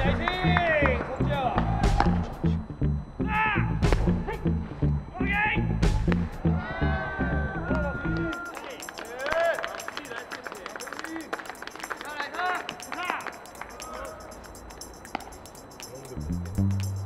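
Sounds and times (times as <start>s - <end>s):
players shouting: 6.5s - 9.8s.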